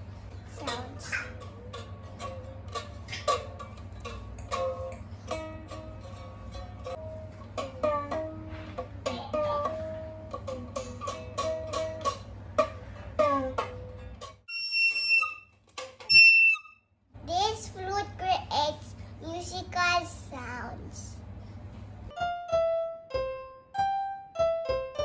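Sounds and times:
steady low hum: 0:00.0 - 0:14.5, 0:17.0 - 0:22.1
toy guitar plucked notes: 0:00.6 - 0:16.7
high whistle-like tones: 0:14.5 - 0:16.9.

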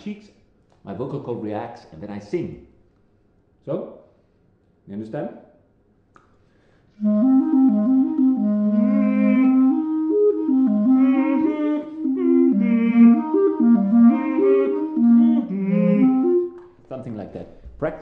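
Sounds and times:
clarinet in low register: 0:07.0 - 0:16.6
person singing into clarinet: 0:07.0 - 0:16.6.

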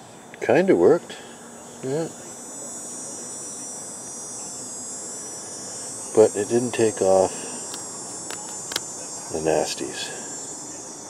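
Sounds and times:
high-pitched insect buzz: 0:00.0 - 0:11.0.

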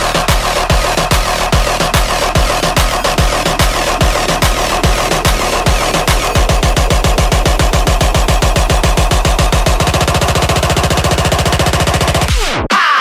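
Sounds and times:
sustained low bass: 0:00.0 - 0:12.4
electronic drum roll: 0:00.0 - 0:12.6.

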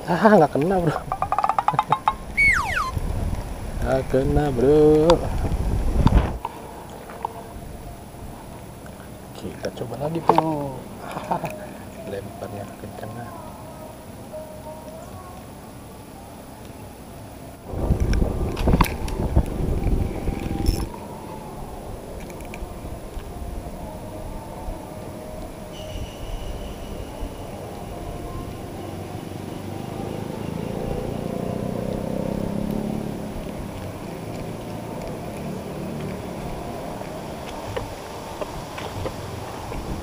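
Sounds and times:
rumbling microphone handling noise: 0:01.0 - 0:06.4, 0:17.7 - 0:20.9
whistle sliding down: 0:02.4 - 0:03.0, 0:25.7 - 0:27.6.

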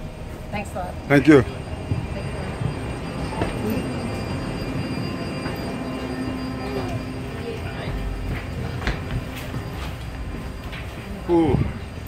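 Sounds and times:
distant voices: 0:00.4 - 0:12.0.

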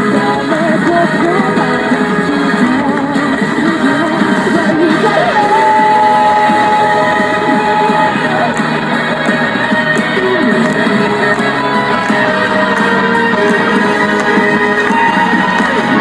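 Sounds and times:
woman singing into microphone: 0:00.0 - 0:07.9
pop backing track: 0:00.0 - 0:16.0.

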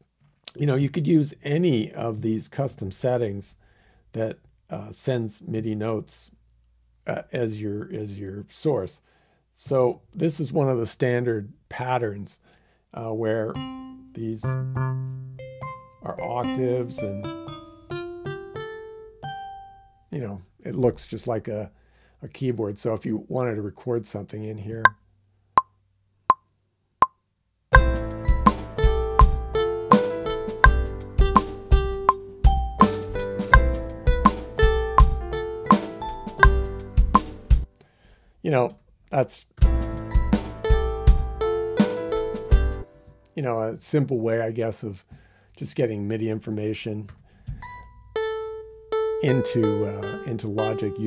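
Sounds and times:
synth notes: 0:13.5 - 0:17.9
backing track with drums: 0:27.8 - 0:37.7, 0:39.6 - 0:42.8
metronome clicks: 0:35.0 - 0:37.4.

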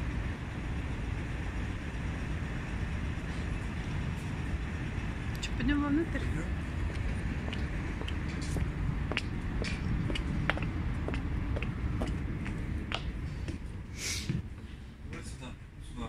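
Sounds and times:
buses idling: 0:00.0 - 0:16.0
footsteps: 0:06.7 - 0:14.5.

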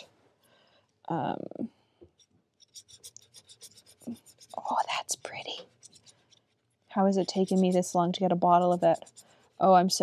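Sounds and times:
pen nib scratching on paper: 0:02.2 - 0:10.0.

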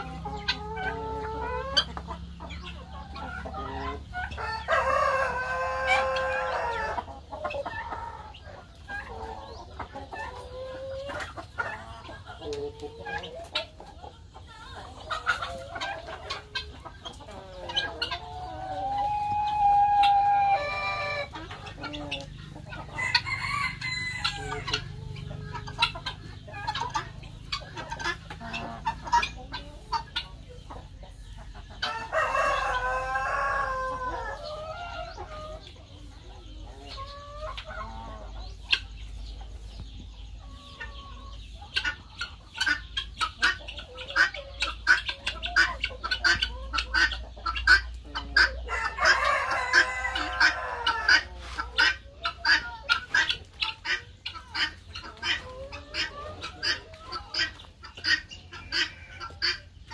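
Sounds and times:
chickens clucking: 0:00.0 - 0:59.9
rooster crowing: 0:04.4 - 0:06.6, 0:22.9 - 0:24.7, 0:31.9 - 0:34.1, 0:48.7 - 0:51.2.

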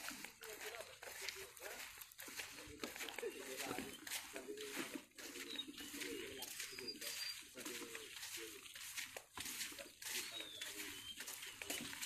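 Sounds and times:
birds calling: 0:00.0 - 0:12.0
footsteps on sandy dirt: 0:00.0 - 0:12.0.

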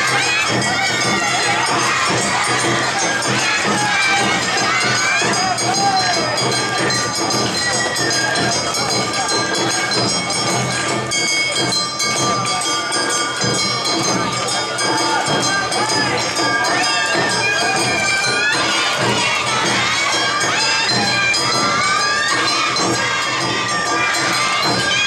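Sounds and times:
festival dance music with piping: 0:00.0 - 0:09.3, 0:17.5 - 0:25.0
crowd noise: 0:00.0 - 0:25.0
high-pitched shouted calls: 0:14.8 - 0:25.0.

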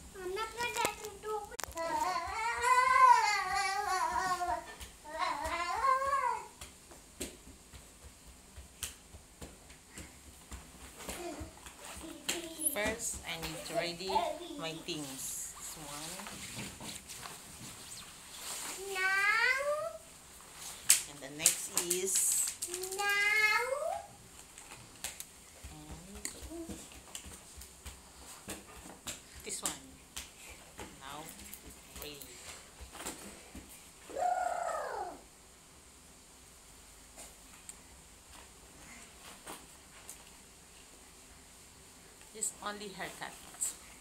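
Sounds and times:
cloth and bag rustling: 0:10.8 - 0:19.4
drawn-out vocal call: 0:34.1 - 0:35.2.

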